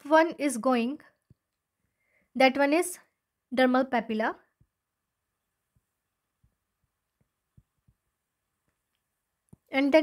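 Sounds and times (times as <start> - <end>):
stylus tapping on tablet screen: 5.6 - 9.7.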